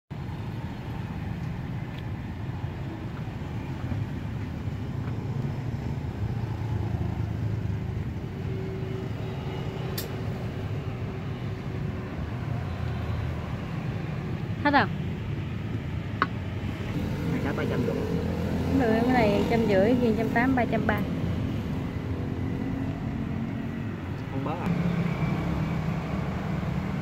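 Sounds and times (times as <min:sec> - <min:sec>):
street traffic rumble: 0:00.1 - 0:27.0.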